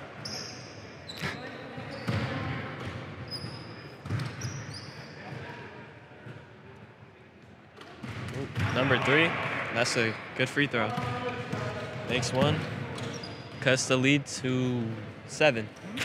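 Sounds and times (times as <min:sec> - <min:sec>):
low crowd murmur: 0:00.9 - 0:15.0.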